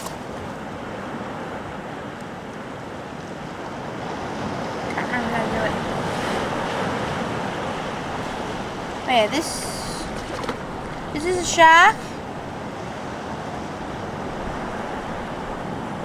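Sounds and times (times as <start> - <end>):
sea surf on rocky shore: 0.0 - 16.0.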